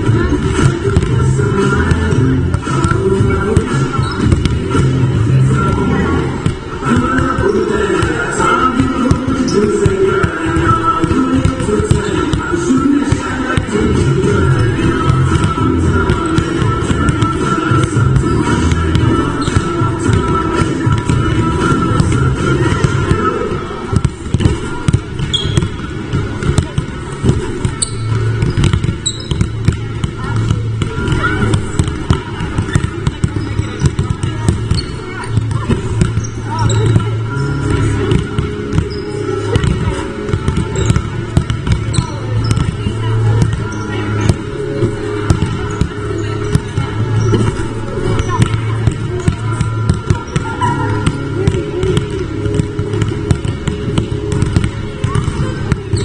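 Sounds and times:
background music: 0.0 - 25.2, 35.1 - 56.0
basketballs bouncing on wooden court: 0.0 - 56.0
voices: 0.0 - 56.0.

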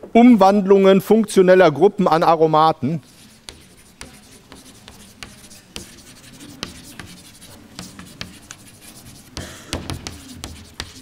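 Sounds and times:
chalk writing on a chalkboard: 3.0 - 11.0.

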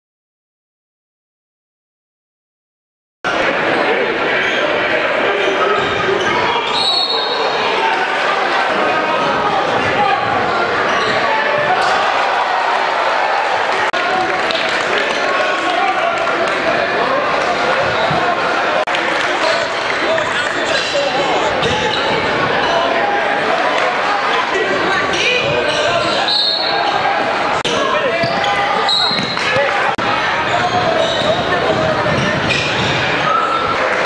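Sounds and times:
crowd voices echoing in hall: 3.3 - 34.0
sneaker squeaks on wooden floor: 28.1 - 29.7, 30.4 - 31.5.

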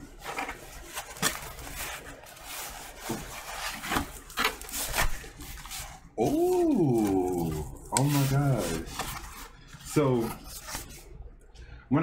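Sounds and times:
man making wordless sounds: 6.2 - 8.9.

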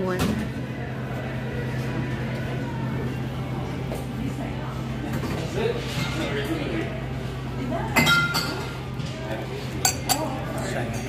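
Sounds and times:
wine glass clinking: 8.0 - 8.7.

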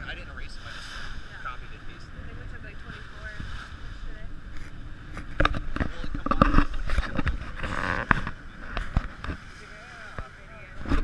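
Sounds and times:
water rushing past boat: 0.0 - 11.0
wind buffeting microphone: 0.0 - 11.0.

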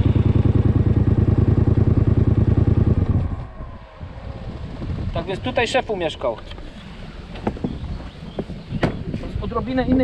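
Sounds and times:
quad bike engine idling: 0.0 - 3.4
wind on microphone: 2.8 - 10.0
sharp knocks: 7.4 - 9.3.

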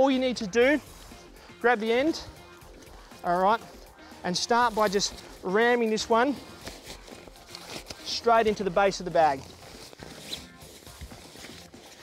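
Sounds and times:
sleeping bag rustling: 0.3 - 12.0.

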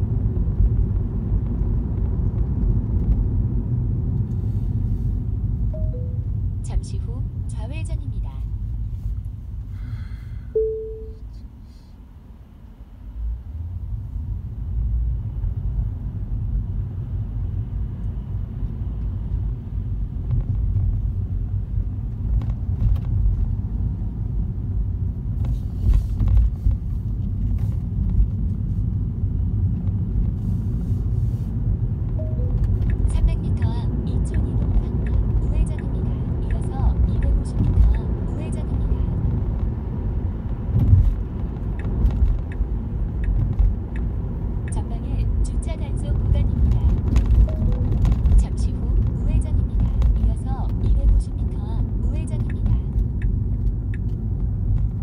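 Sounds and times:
road and tyre rumble: 0.0 - 55.0.

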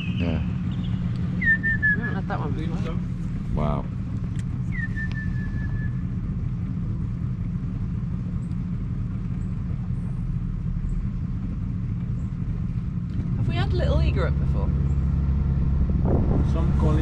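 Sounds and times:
outboard motor running: 0.0 - 17.0
whistled note: 1.4 - 2.2, 4.7 - 6.0
wind on microphone: 15.6 - 17.0.

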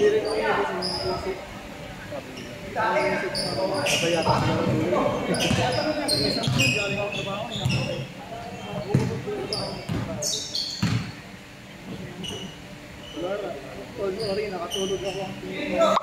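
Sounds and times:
sneakers squeaking on hardwood: 0.0 - 1.4, 2.4 - 11.2, 11.9 - 13.2, 14.1 - 15.3
players calling out: 0.0 - 16.0
basketball bouncing: 4.2 - 7.0, 7.6 - 8.0, 8.7 - 10.2, 10.8 - 11.2.

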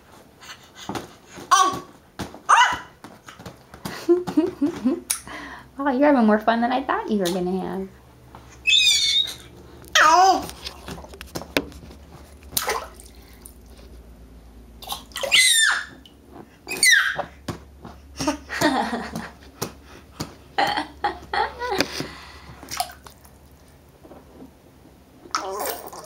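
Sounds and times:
baby squealing: 8.6 - 10.4, 15.1 - 16.0, 16.7 - 17.3
baby babbling: 8.8 - 10.5
baby splashing water: 9.2 - 13.8, 14.8 - 16.2, 21.8 - 23.8, 25.3 - 26.0.

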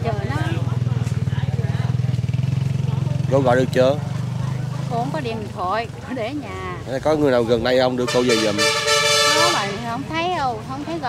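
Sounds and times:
motorbike engine idling: 0.0 - 11.0.

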